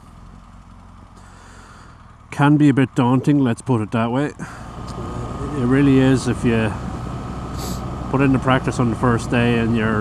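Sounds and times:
motorcycle engine running: 0:00.0 - 0:10.0
faint hiss: 0:07.5 - 0:07.9.

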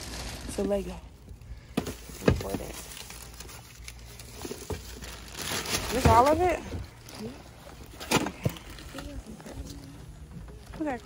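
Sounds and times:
plastic and foil bags rustling: 0:00.0 - 0:11.0.

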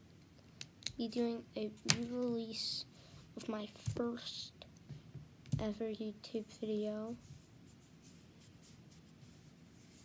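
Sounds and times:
boy's voice: 0:01.0 - 0:04.7, 0:05.5 - 0:07.2
soft scratching and rubbing: 0:06.8 - 0:10.0.

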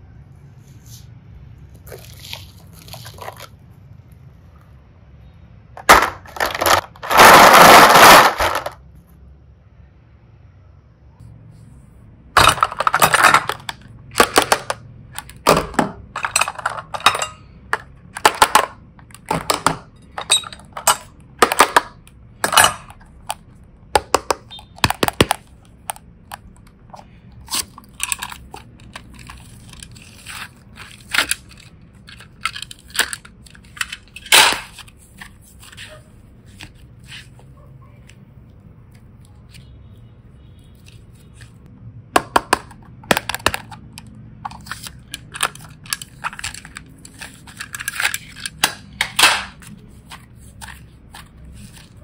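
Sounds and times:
plastic toys clattering against glass: 0:12.4 - 0:23.1.

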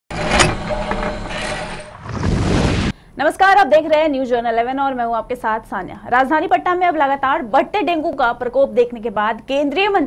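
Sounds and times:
noisy whoosh: 0:01.4 - 0:03.0.

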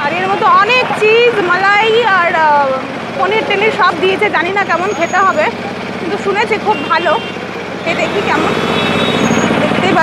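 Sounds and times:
woman speaking: 0:00.0 - 0:08.6, 0:09.6 - 0:10.0
street traffic: 0:00.0 - 0:10.0
vehicle engine idling: 0:00.0 - 0:10.0.

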